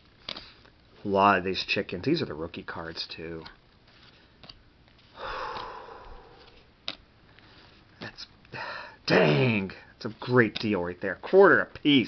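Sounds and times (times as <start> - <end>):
person sniffing: 5.2 - 6.6.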